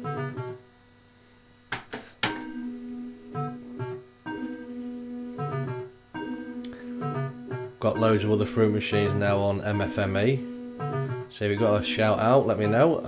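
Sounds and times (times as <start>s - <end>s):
fruit machine electronic jingle: 0.0s - 0.6s, 2.3s - 13.0s.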